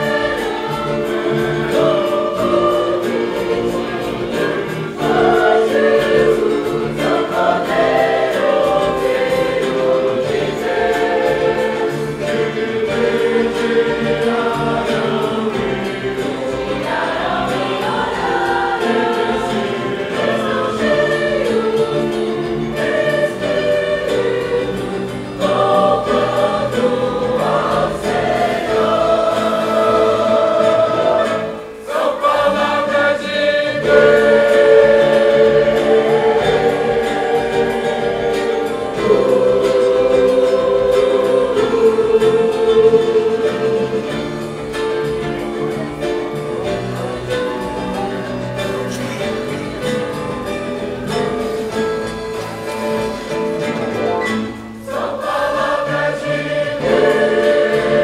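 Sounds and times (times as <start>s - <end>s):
congregation singing a hymn: 0.0s - 58.0s
violins and guitars: 0.0s - 58.0s.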